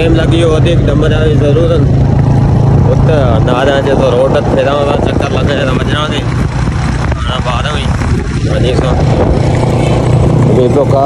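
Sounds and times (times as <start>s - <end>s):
man's voice: 0.0s - 1.9s, 2.8s - 6.3s
moving vehicle rumble: 0.0s - 11.0s
wind noise on microphone: 0.0s - 11.0s.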